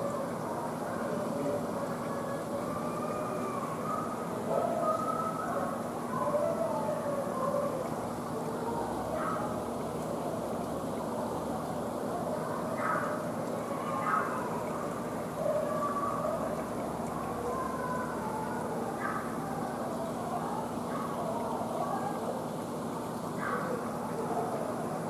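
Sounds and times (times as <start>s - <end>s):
distant voices talking: 0.0s - 25.0s
low room hum: 0.0s - 25.0s.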